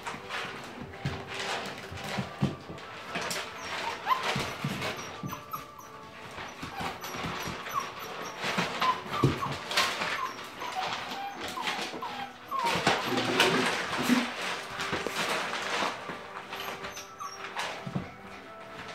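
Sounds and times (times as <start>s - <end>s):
paws scuffling on floor: 0.0s - 18.9s
puppies whimpering: 1.1s - 18.9s.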